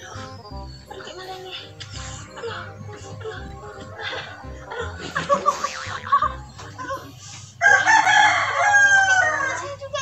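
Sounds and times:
rooster crowing: 7.6s - 9.7s.

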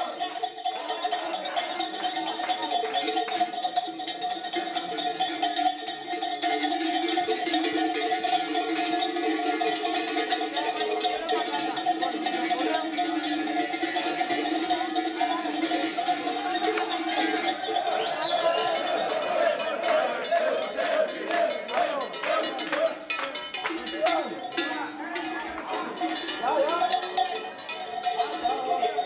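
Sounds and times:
large bells clanging: 0.0s - 19.4s, 21.7s - 29.0s
crowd voices: 0.0s - 29.0s.

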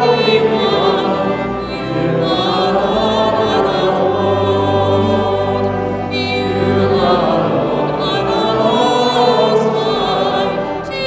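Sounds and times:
vocal trio singing in harmony: 0.0s - 11.0s.

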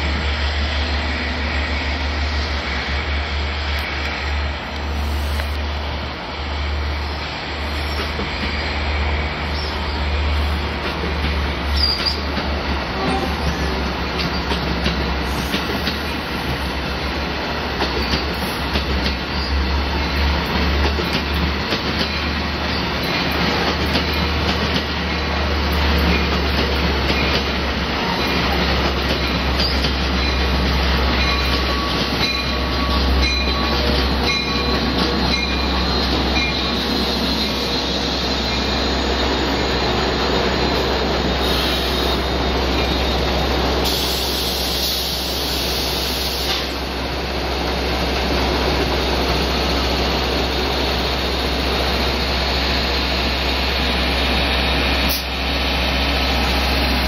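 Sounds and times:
train wheels rumbling on rails: 0.0s - 57.0s
high wheel squeals: 31.1s - 43.4s.

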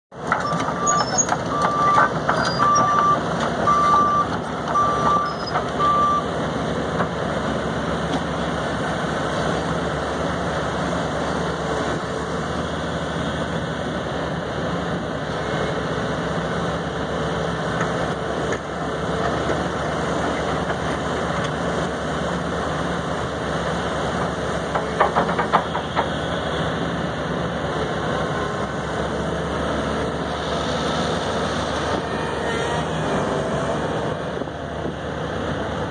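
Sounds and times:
excavator engine running: 0.2s - 35.9s.

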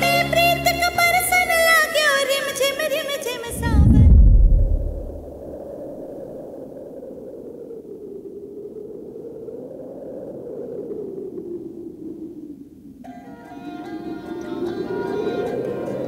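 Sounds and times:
deep boom hit: 3.5s - 5.6s
low wavering drone: 3.5s - 6.2s.

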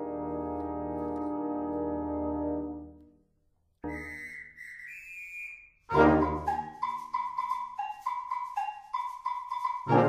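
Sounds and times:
high clear whistle: 3.8s - 9.1s
brass band playing: 5.9s - 6.9s.

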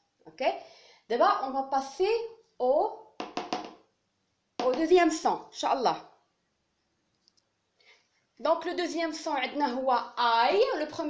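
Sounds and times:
faint clicks: 7.1s - 7.5s.

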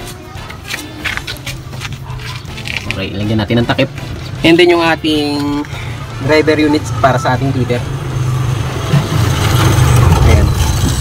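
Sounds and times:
vehicle engine rumble: 0.5s - 11.0s.

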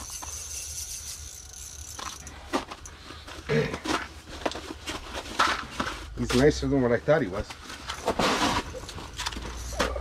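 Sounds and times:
fishing reel cranking: 0.0s - 2.3s
fishing rod and line handled: 0.0s - 2.9s
short rattles and clicks: 0.0s - 2.9s.

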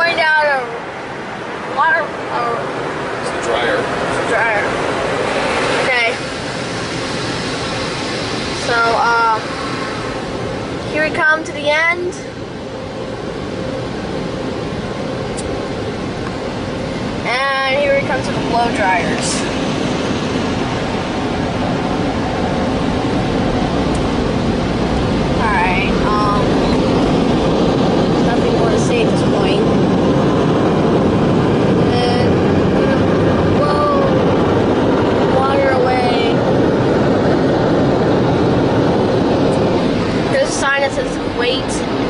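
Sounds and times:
car wash blow dryers: 0.0s - 42.0s.

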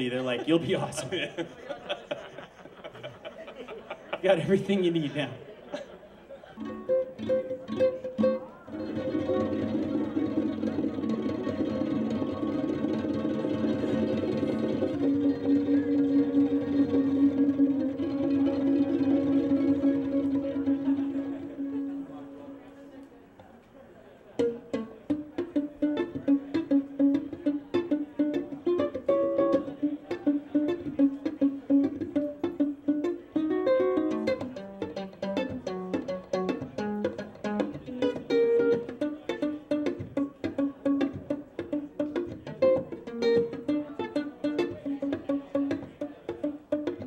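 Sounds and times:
ukulele plucked notes: 6.6s - 23.0s, 24.4s - 47.0s.

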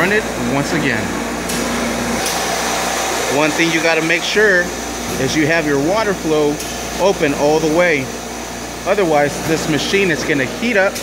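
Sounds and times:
machine hum and whir: 0.0s - 11.0s.

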